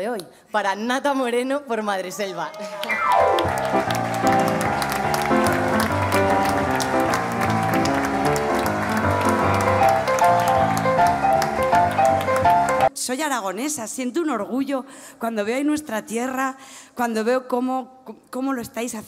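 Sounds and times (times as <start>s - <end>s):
audience clapping: 2.5s - 12.9s
live grand piano music: 2.9s - 12.9s.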